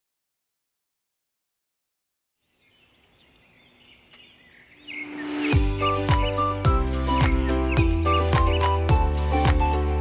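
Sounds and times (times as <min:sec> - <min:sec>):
small birds chirping: 0:02.4 - 0:10.0.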